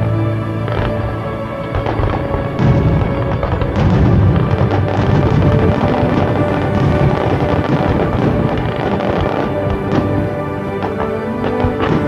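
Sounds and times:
music: 0:00.0 - 0:12.0
fireworks crackling: 0:00.5 - 0:12.0
fireworks booming: 0:00.7 - 0:12.0.

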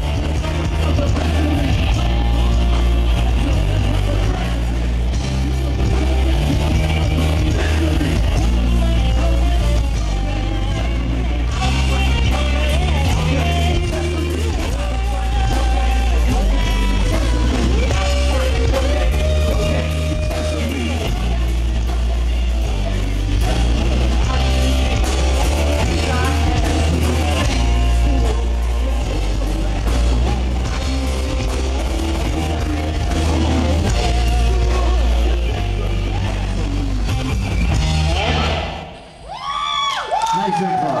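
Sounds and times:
bass: 0:00.0 - 0:41.0
drums: 0:00.0 - 0:41.0
electric guitar: 0:00.0 - 0:41.0.

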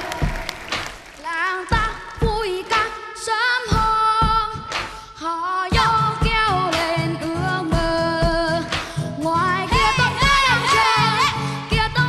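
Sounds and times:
upbeat band with drum beat: 0:00.0 - 0:12.0
child singing into a microphone: 0:01.2 - 0:12.0.

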